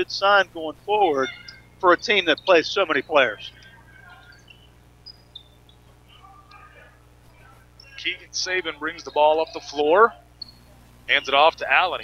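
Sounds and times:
low electrical hum: 0.0 - 12.0
sneakers squeaking on court: 1.0 - 8.0, 10.4 - 10.8.

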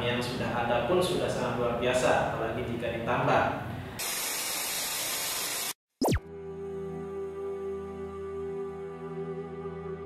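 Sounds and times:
fast falling sweep: 6.0 - 6.2.

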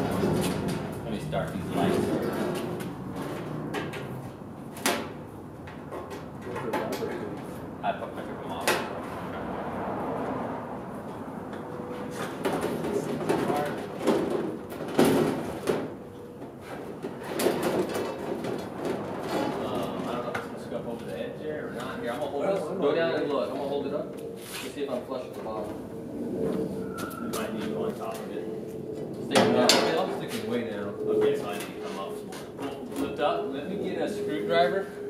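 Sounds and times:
low voices: 19.3 - 35.0.

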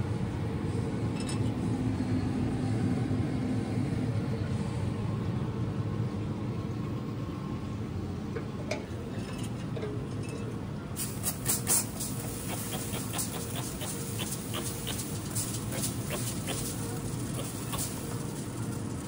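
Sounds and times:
steady low hum: 0.0 - 19.0
spray bottle squirting mist: 11.0 - 19.0.

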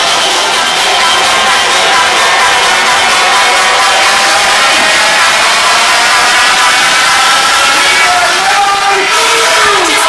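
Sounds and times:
crowd noise: 0.0 - 10.0
loud dance music: 0.0 - 10.0.

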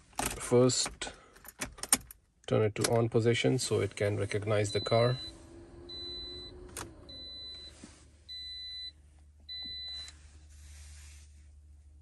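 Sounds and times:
key turning in ignition: 1.4 - 2.2
car warning chime beeping: 4.4 - 10.1.

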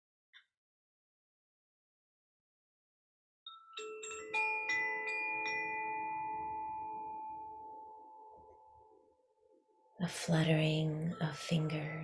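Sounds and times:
wind chime ringing: 3.5 - 9.9.

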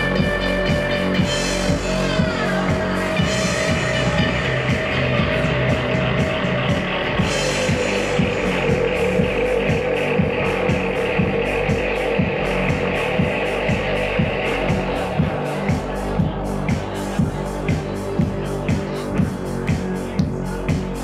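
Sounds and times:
live band music: 0.0 - 21.0.

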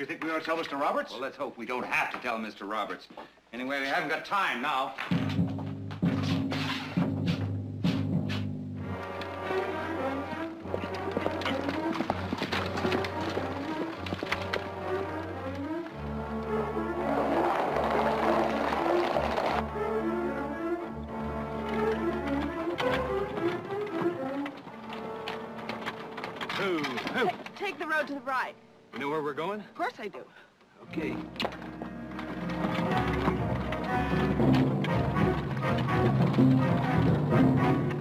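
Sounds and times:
dramatic orchestral music: 5.2 - 27.4, 30.9 - 38.0.

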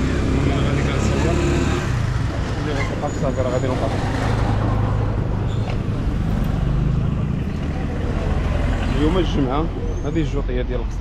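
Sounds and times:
street noise rumble: 0.0 - 11.0.

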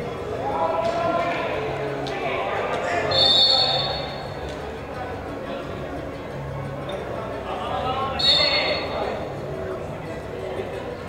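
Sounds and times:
people talking: 0.0 - 11.0
referee's whistle blast: 3.1 - 4.3, 8.2 - 9.0.

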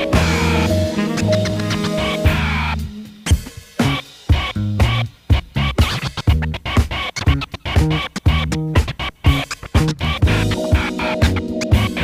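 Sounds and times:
funk drum beat: 0.0 - 12.0
turntable scratching: 0.0 - 12.0.

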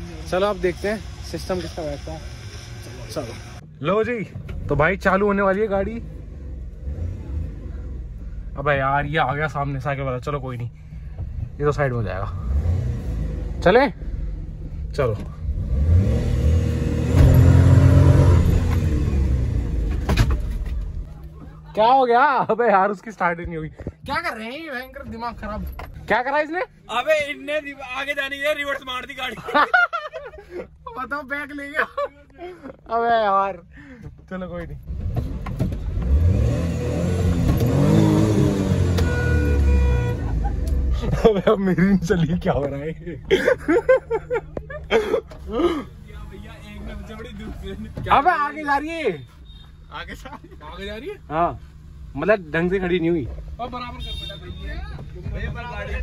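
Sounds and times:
car engine revving: 0.0 - 3.6, 4.4 - 21.1, 34.7 - 48.3.

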